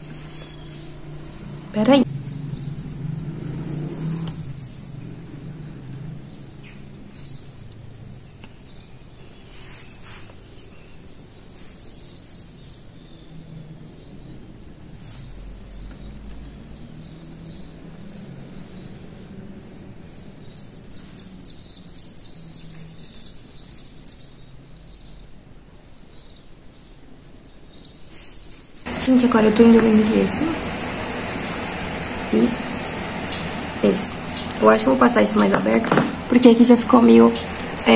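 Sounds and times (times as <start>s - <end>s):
low steady background hum: 0.0s - 37.9s
small birds chirping: 0.0s - 37.9s.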